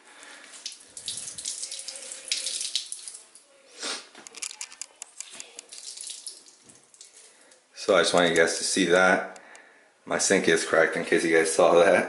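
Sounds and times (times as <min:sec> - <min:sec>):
water trickling into sink: 0:00.5 - 0:03.5, 0:05.2 - 0:07.6.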